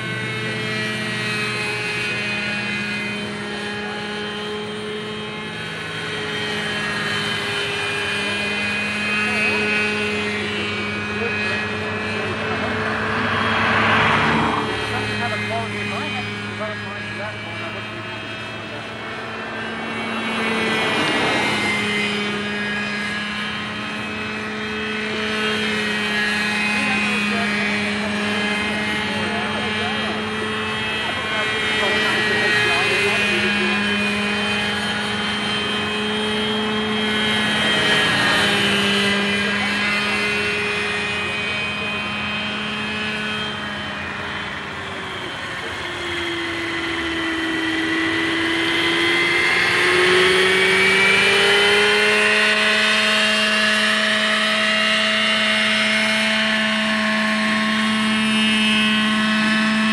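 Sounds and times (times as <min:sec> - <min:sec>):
model helicopter engine and rotor: 0:00.0 - 0:59.9.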